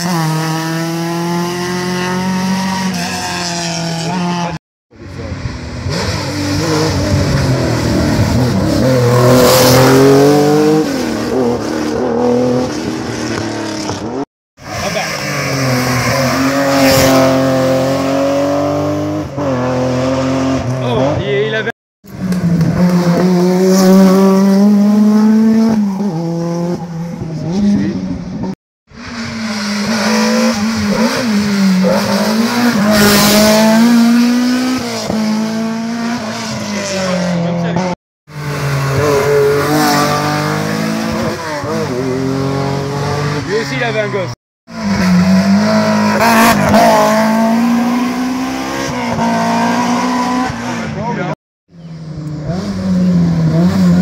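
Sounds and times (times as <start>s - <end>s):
racing car engines revving: 0.0s - 54.0s.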